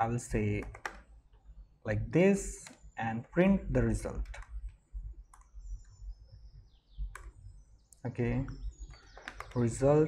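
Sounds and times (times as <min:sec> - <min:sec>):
laptop keystrokes: 0:00.6 - 0:01.1, 0:04.2 - 0:05.6, 0:07.1 - 0:07.4, 0:08.5 - 0:09.7.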